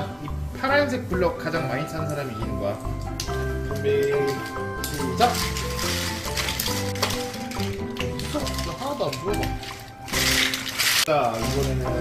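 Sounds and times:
plastic toy blocks clattering: 5.1s - 12.0s.

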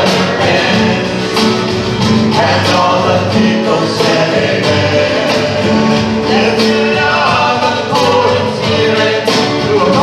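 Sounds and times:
guitars: 0.0s - 10.0s
worship band playing: 0.0s - 10.0s
person singing: 2.3s - 10.0s.

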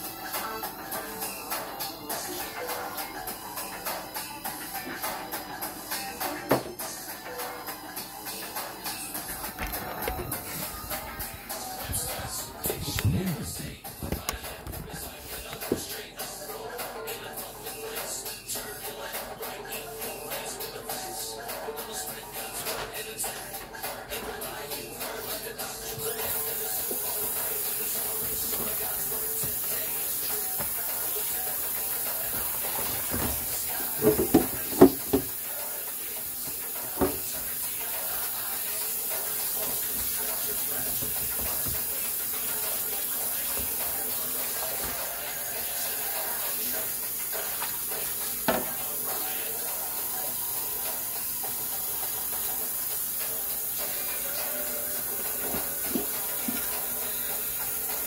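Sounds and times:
tap water running into sink: 26.2s - 35.4s, 36.4s - 37.5s, 39.0s - 45.2s, 47.2s - 49.0s
tap running into sink: 32.7s - 35.3s, 36.5s - 37.4s, 48.4s - 48.8s
dishes clanking against sink: 32.8s - 35.3s.

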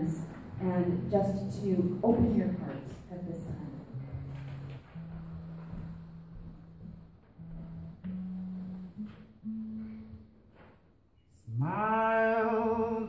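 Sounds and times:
cello and guitar held notes: 0.0s - 13.0s.

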